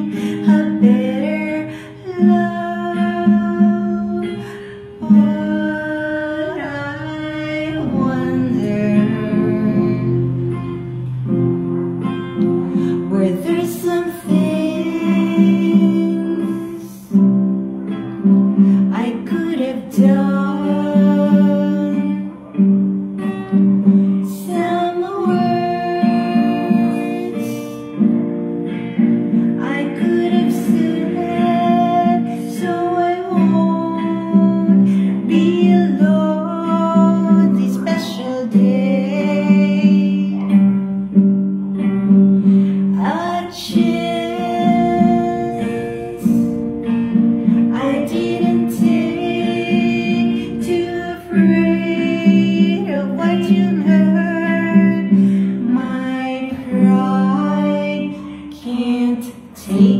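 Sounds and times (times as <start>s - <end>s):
woman singing: 0.0s - 11.3s, 12.4s - 28.2s, 29.2s - 59.9s
acoustic guitar strumming: 0.0s - 59.9s.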